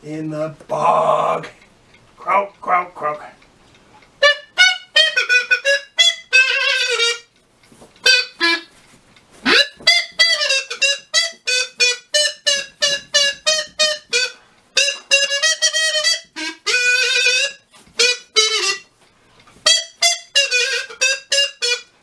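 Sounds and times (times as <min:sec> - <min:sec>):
bouncy tune on small wind instrument: 0:04.2 - 0:07.4, 0:08.0 - 0:19.0, 0:19.6 - 0:22.0.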